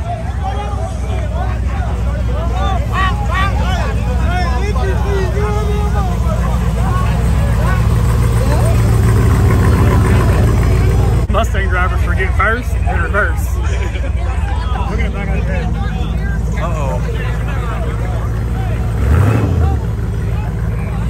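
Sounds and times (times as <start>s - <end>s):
diesel truck engine rumbling: 0.0s - 21.0s
people's voices: 0.0s - 21.0s.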